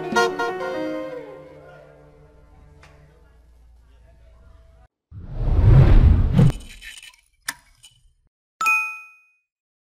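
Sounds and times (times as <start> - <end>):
notification bell ding: 8.6 - 9.4.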